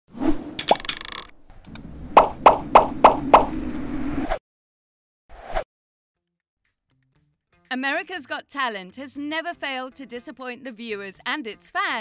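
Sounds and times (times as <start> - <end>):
sharp cartoon plops: 2.2 - 3.5.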